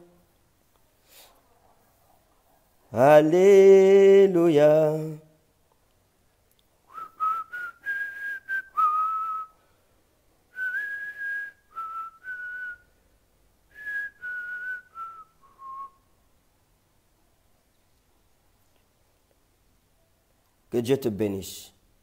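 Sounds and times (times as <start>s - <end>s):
man whistling a slow melody: 6.9s - 9.6s, 10.5s - 12.9s, 13.7s - 16.1s.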